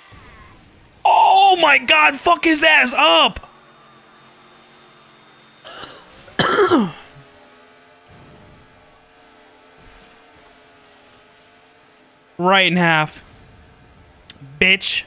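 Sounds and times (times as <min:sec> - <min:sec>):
man clearing his throat: 0:05.7 - 0:07.2.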